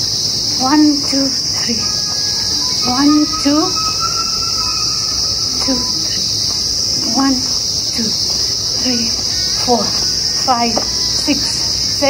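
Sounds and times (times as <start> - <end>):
insects droning in trees: 0.0 - 12.0.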